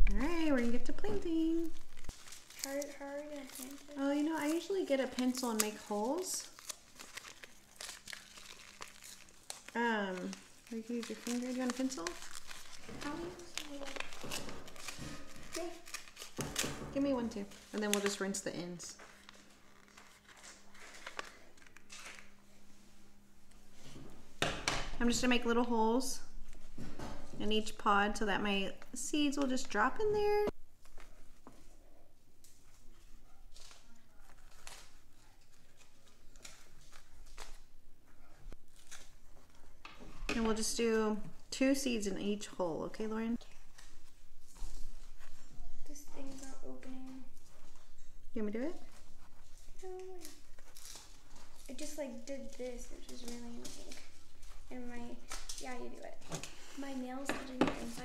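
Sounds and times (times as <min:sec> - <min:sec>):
paper packet crinkling and tearing: 0:00.1 - 0:22.4, 0:33.5 - 0:37.7, 0:38.6 - 0:39.7, 0:48.8 - 0:55.8.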